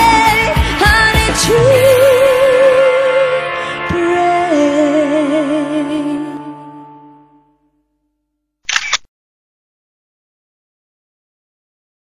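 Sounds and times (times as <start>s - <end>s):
camera shutter click: 8.7s - 9.1s.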